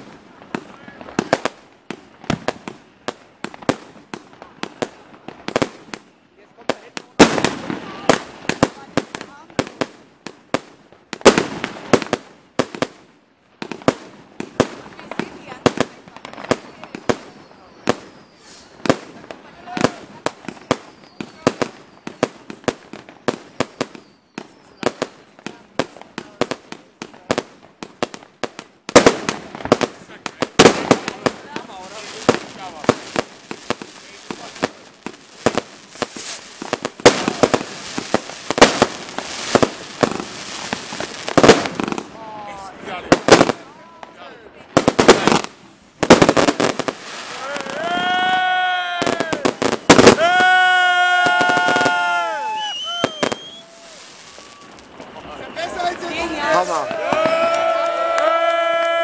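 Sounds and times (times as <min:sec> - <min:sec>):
fireworks bangs and crackling: 0:00.0 - 0:59.0.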